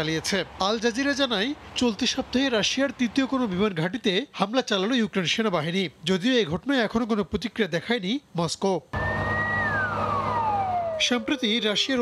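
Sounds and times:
fire engine siren: 9.0 - 12.0
truck engine humming: 9.0 - 12.0.

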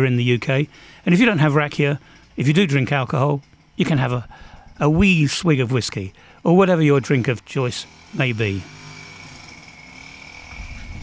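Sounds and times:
faint motor running: 0.3 - 11.0.

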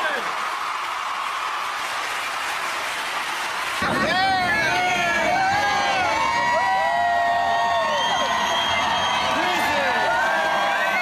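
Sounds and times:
arena crowd cheering and shouting: 0.0 - 11.0
long held whoops: 5.3 - 11.0.

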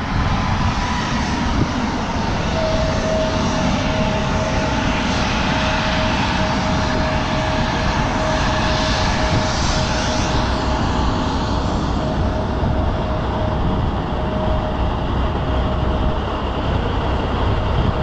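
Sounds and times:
high jet whine: 0.0 - 18.0
jet engine roar: 0.0 - 18.0.

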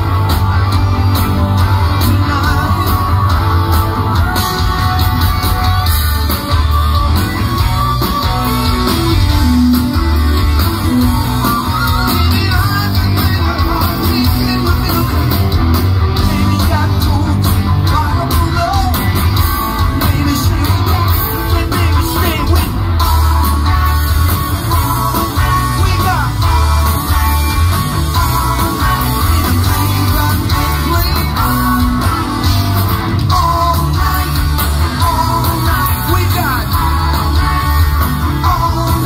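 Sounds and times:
live rock band playing: 0.0 - 39.0.

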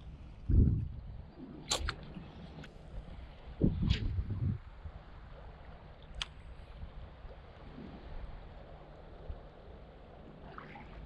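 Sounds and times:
wind buffet on microphone: 0.0 - 5.4.

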